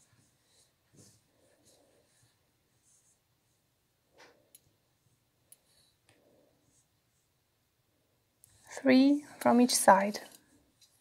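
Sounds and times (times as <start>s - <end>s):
yarn rustling on crochet hook: 0.0s - 7.4s.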